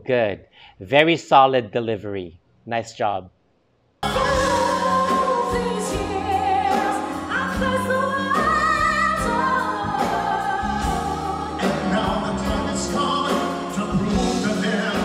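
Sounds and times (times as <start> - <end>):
singer with band and orchestra: 4.0 - 15.0.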